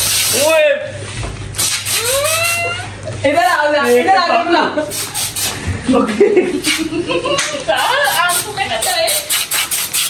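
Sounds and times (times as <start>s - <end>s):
aerosol spray hissing: 0.0s - 0.4s, 4.9s - 5.6s, 8.0s - 10.0s.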